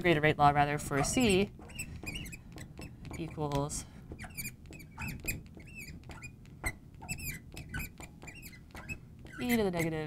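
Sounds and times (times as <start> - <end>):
marker squeaking on glass: 0.9 - 10.0.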